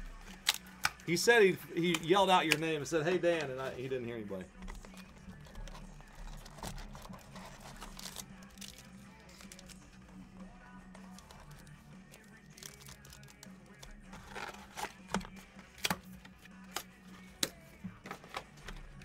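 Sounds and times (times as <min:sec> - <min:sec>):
faint background music: 0:00.0 - 0:19.0
cardboard packaging rustling: 0:04.6 - 0:09.8, 0:14.1 - 0:15.4.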